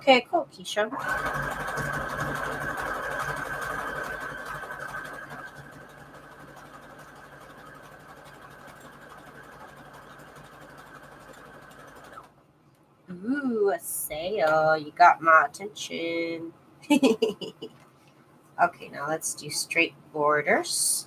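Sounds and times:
electric sewing machine running: 0:00.8 - 0:12.3.

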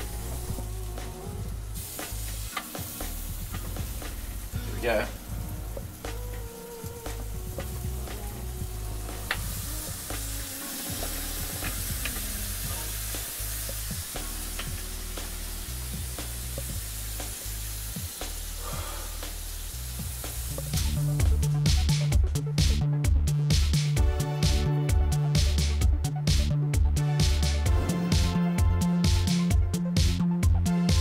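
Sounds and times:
sandwiches sizzling in press: 0:00.0 - 0:04.5, 0:09.0 - 0:20.7
background music with bass: 0:00.0 - 0:31.0.

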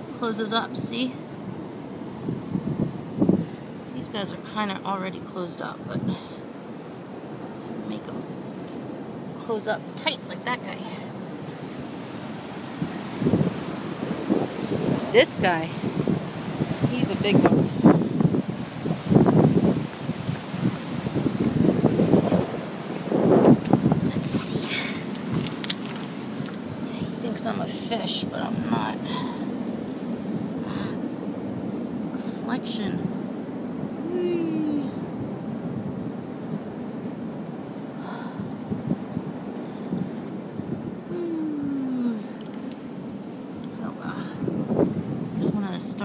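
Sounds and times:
ocean waves washing: 0:00.0 - 0:46.0
wind buffeting microphone: 0:00.0 - 0:46.0
person humming: 0:34.0 - 0:35.0, 0:41.1 - 0:42.4.

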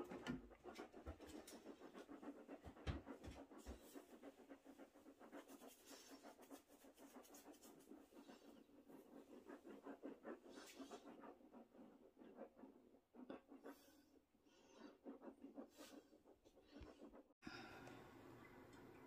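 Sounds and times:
rapid rhythmic panting: 0:00.0 - 0:17.4.

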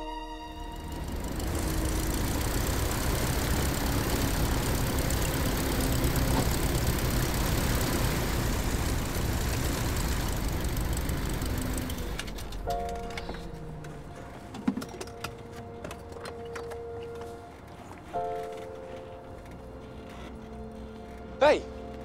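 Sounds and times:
propeller plane engine idling: 0:00.6 - 0:14.4.

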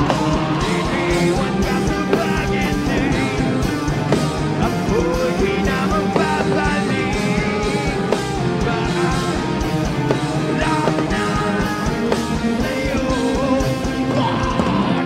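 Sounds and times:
drumbeat: 0:00.0 - 0:15.0
electric guitars: 0:00.0 - 0:15.0
person singing: 0:00.0 - 0:15.0.

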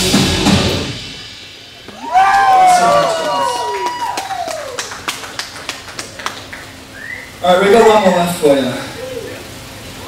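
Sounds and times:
small crowd clapping: 0:01.9 - 0:07.4.

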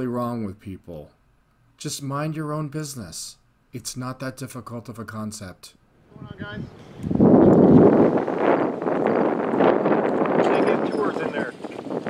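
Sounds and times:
wind blowing across microphone: 0:06.0 - 0:12.0.

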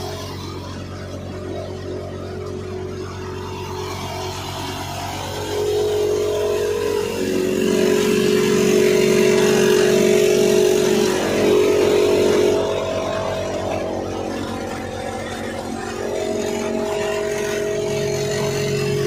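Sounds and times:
thresher running: 0:00.0 - 0:19.0.

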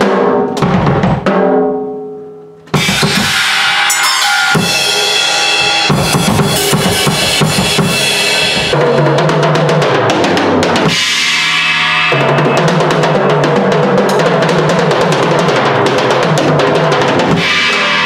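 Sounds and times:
cymbals washing: 0:02.8 - 0:08.8, 0:10.9 - 0:14.3
bass drum hits: 0:04.6 - 0:08.9.

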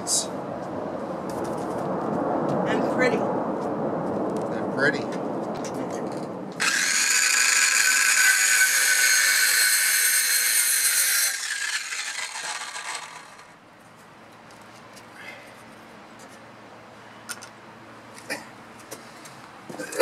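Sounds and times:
circular saw whining: 0:06.6 - 0:13.6.

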